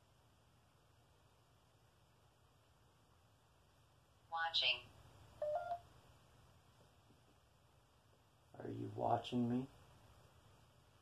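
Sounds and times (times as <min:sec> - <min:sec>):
electronic two-tone beep: 0:05.4 - 0:05.8.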